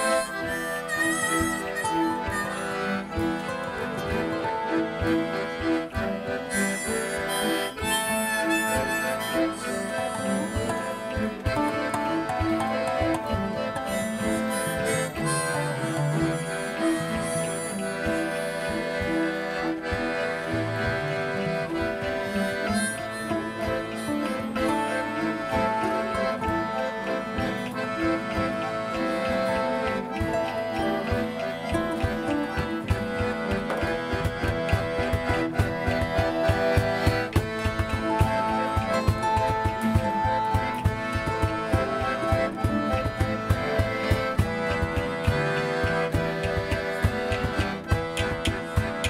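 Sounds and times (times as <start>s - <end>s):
harmonica long held notes: 0.0s - 49.0s
piano accordion: 0.0s - 49.0s
strummed acoustic guitar: 0.0s - 49.0s.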